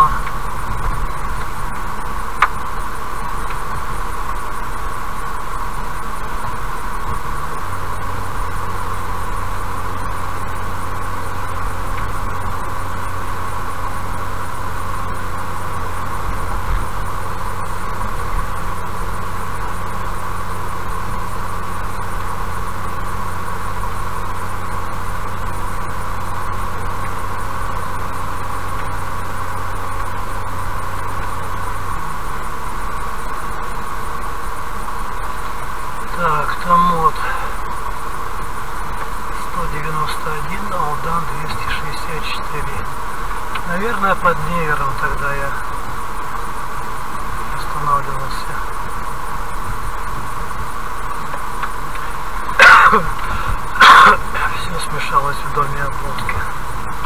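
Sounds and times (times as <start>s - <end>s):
car road and engine noise: 0.0s - 57.0s
low hum: 0.0s - 57.0s.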